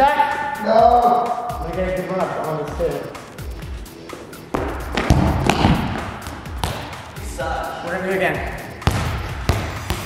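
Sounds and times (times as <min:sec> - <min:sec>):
background music: 0:00.0 - 0:10.0
ball bouncing on hard floor: 0:04.5 - 0:07.0, 0:08.8 - 0:10.0.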